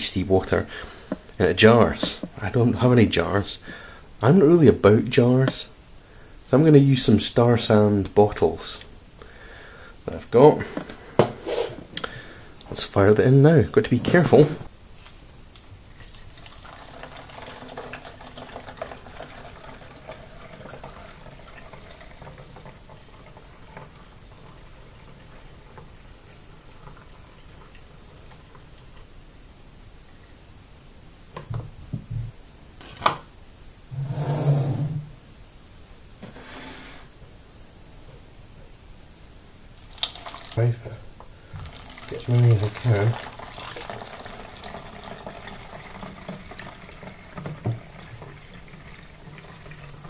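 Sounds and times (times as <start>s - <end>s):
liquid trickling through funnel: 15.9s - 28.6s, 39.8s - 40.6s, 41.5s - 50.0s.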